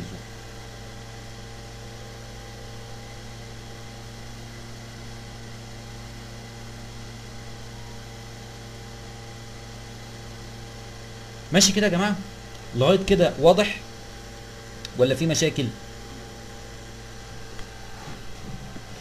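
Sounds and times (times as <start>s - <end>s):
electrical hum and hiss: 0.0s - 19.0s.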